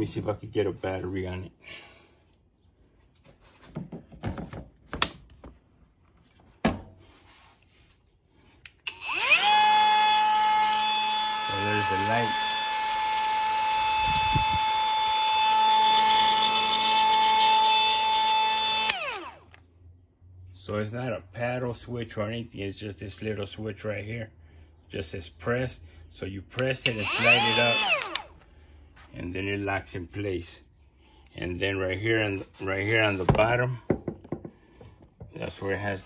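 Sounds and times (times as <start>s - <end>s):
die grinder motor whine: 8.9s - 19.6s, 26.8s - 28.3s
battery clicking into tool: 28.0s - 28.4s.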